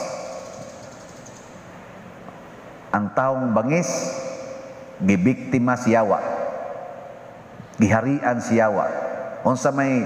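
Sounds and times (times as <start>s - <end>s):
faint room hum: 0.0s - 10.0s
voice echo: 0.0s - 10.0s.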